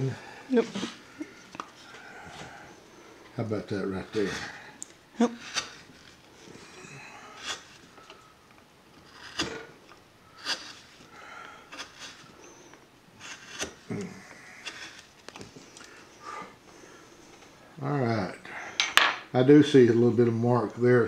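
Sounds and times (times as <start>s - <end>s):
quiet wood scraping: 3.4s - 8.3s, 8.9s - 17.6s
carving blade slicing wood: 5.3s - 6.2s, 7.4s - 7.9s, 9.0s - 9.8s, 10.4s - 12.6s, 13.2s - 14.0s, 14.6s - 15.2s.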